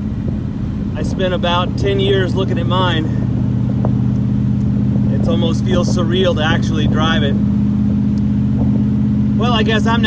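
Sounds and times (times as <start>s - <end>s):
car engine low drone: 0.0s - 10.0s.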